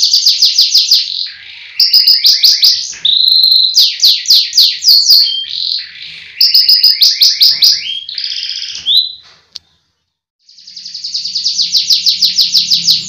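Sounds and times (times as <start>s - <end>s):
canary singing: 0.0s - 13.0s.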